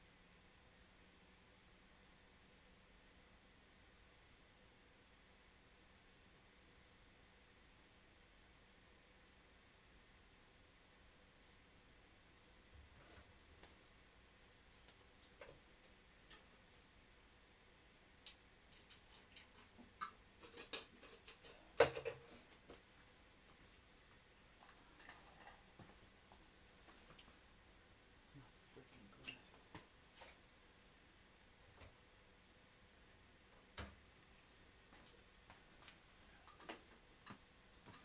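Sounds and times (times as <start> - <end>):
faint clicks and ticks: 14.8 - 17.0, 18.2 - 22.9.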